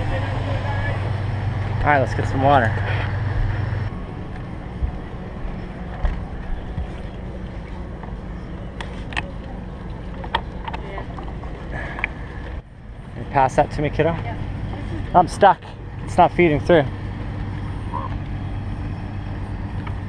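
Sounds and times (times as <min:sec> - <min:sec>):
low steady hum: 0:00.0 - 0:20.0
steady low rumble: 0:00.0 - 0:20.0.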